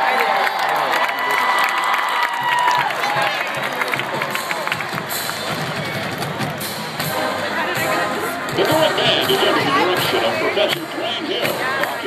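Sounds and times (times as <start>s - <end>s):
stadium crowd cheering and applauding: 0.0s - 7.9s, 8.5s - 12.0s.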